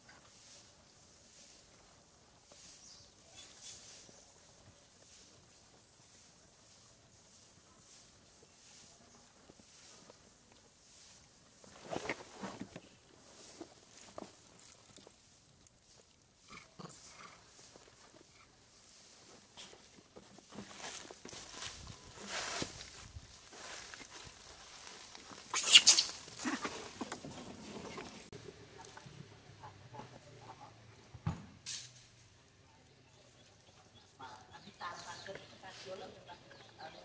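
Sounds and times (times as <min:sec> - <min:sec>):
high-pitched monkey outburst: 0:25.5 - 0:26.2
macaques calling: 0:25.5 - 0:26.6.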